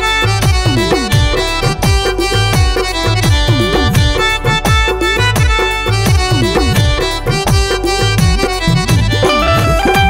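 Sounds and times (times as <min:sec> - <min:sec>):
sustained melody notes: 0:00.0 - 0:10.0
hand drum with sliding pitch: 0:08.3 - 0:10.0.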